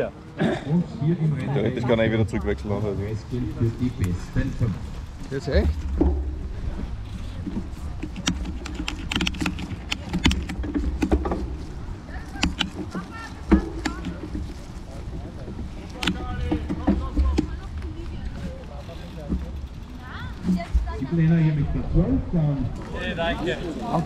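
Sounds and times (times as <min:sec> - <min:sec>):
voices talking: 0:00.0 - 0:24.0
sharp clicks and knocks: 0:05.6 - 0:17.9.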